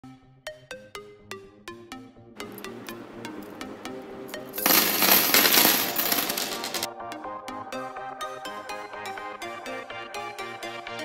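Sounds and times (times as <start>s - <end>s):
electronic background music: 0.1s - 11.0s
metal rings jangling on table: 4.3s - 6.9s.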